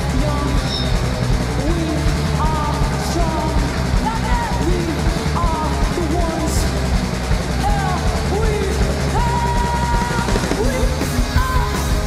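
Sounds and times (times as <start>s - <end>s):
bass guitar: 0.0s - 12.0s
drum kit: 0.0s - 12.0s
punk rock band playing live: 0.0s - 12.0s.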